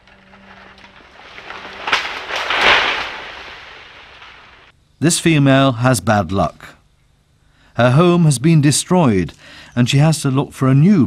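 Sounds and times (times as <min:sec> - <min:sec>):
plant rustling and crackling: 0:00.0 - 0:04.7.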